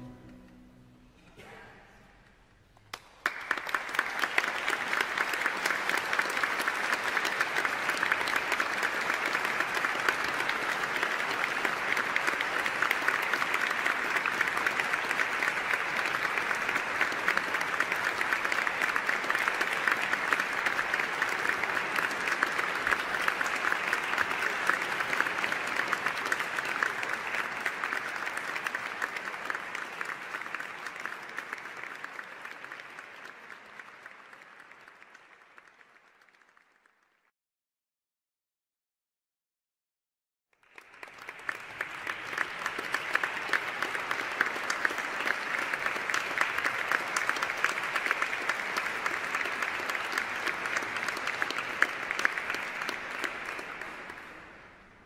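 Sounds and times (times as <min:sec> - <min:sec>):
audience applauding: 0:02.8 - 0:37.2, 0:40.6 - 0:55.0.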